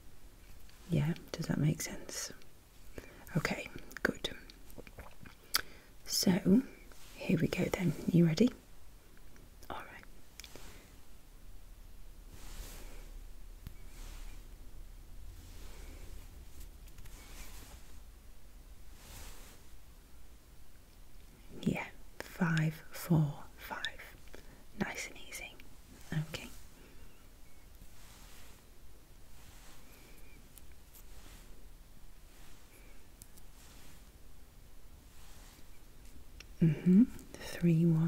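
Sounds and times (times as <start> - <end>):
woman speaking softly: 0.8 - 2.4, 3.3 - 4.5, 6.0 - 8.6, 9.7 - 10.1, 21.6 - 24.1, 24.8 - 26.6, 36.6 - 38.0
breathy whisper: 9.7 - 10.9, 21.8 - 27.3.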